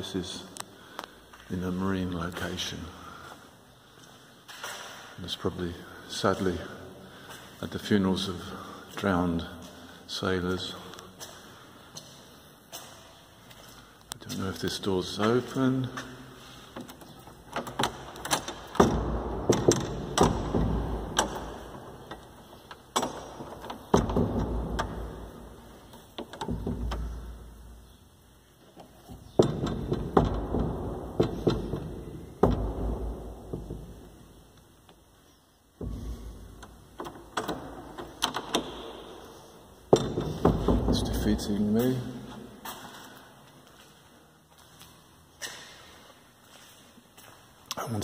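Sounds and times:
door push bar rattling and clunking: 0:16.7 - 0:27.7, 0:28.8 - 0:34.2, 0:35.8 - 0:41.5.

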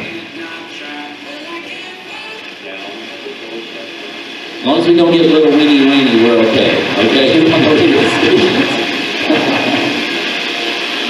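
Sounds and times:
music with singing from radio: 0:00.0 - 0:11.0.

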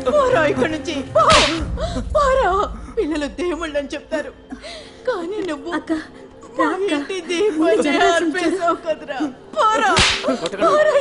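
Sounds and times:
sharp swish: 0:01.3 - 0:01.6, 0:10.0 - 0:10.3.

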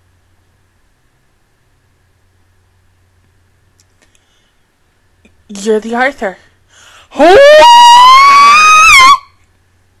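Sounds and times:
woman shrieking: 0:07.2 - 0:09.3.

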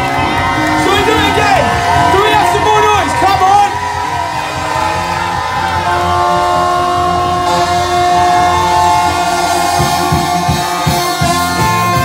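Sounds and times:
horns holding sustained notes: 0:00.0 - 0:12.0
ska band playing: 0:00.0 - 0:12.0.

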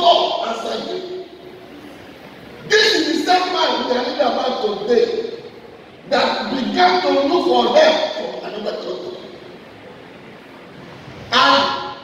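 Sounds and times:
man preaching: 0:00.0 - 0:01.4, 0:02.6 - 0:09.4, 0:11.3 - 0:12.0.

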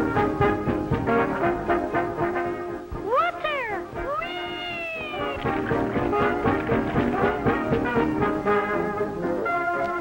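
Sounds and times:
brass-led band music: 0:00.0 - 0:03.0, 0:05.1 - 0:10.0
cartoon cat meowing: 0:03.1 - 0:05.9.

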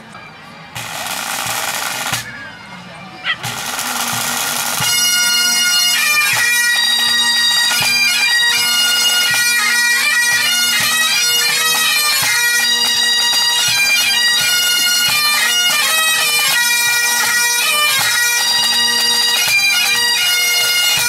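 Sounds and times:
bagpipes playing a tune: 0:00.0 - 0:21.0
bagpipes squeal: 0:00.0 - 0:21.0.

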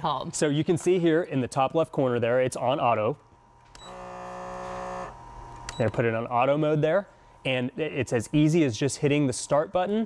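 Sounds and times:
machine electric hum: 0:00.0 - 0:10.0.

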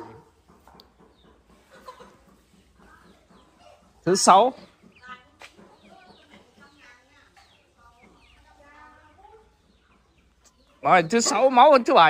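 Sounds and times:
chickens clucking faintly: 0:00.0 - 0:12.0.

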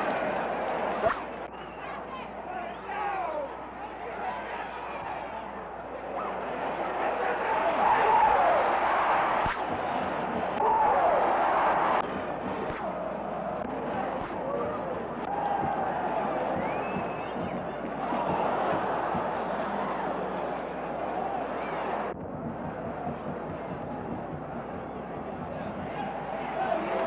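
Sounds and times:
crowd cheering: 0:00.0 - 0:27.0
stadium crowd voices: 0:00.0 - 0:27.0.

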